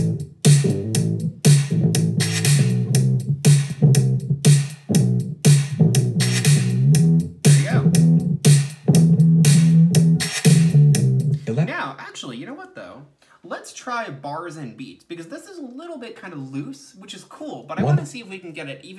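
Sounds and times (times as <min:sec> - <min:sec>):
bass guitar loop: 0:00.0 - 0:11.7, 0:17.8 - 0:18.0
drum loop: 0:00.0 - 0:11.9, 0:17.8 - 0:18.2.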